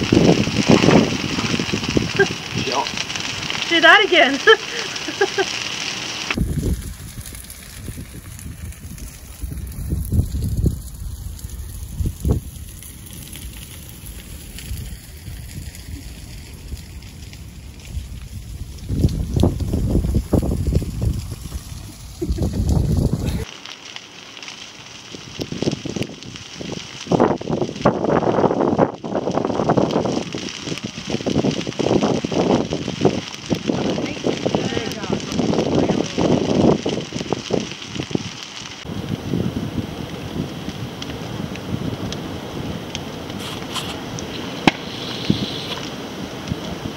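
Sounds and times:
bonfire flames crackling: 0.0s - 46.9s.

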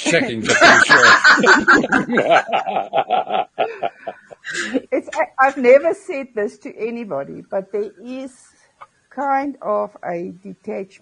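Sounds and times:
person speaking: 0.0s - 6.1s
person laughing loudly: 0.5s - 4.9s.

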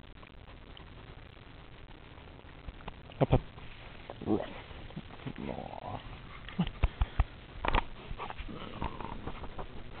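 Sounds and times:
shuffling sounds: 3.6s - 10.0s.

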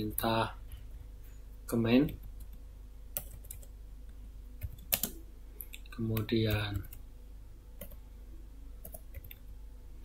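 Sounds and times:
faint low hum: 0.0s - 10.0s
computer keyboard key presses: 4.6s - 6.9s.

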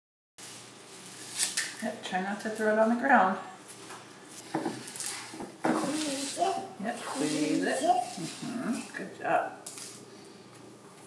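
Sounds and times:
kale leaves being torn: 1.1s - 1.8s, 9.6s - 10.0s.

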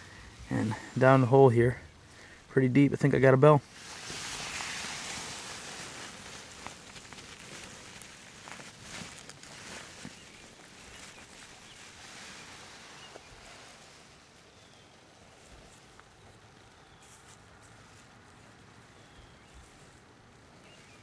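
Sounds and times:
hand digging in loose soil: 3.6s - 15.9s
small knocks and crumbles: 4.0s - 11.6s.

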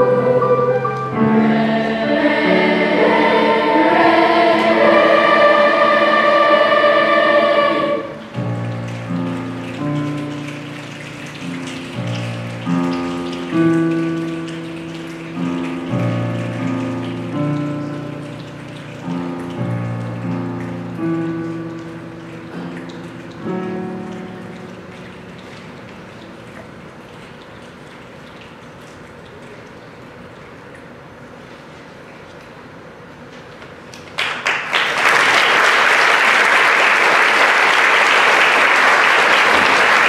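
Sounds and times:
youth choir singing: 0.0s - 8.2s
piano chords: 0.0s - 29.4s.

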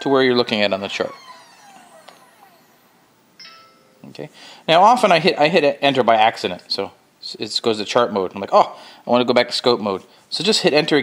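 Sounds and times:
motors whining: 0.0s - 3.4s.

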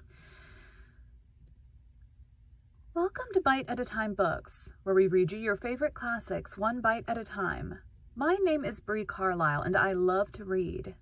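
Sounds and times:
soft breath close to microphone: 0.0s - 1.2s.

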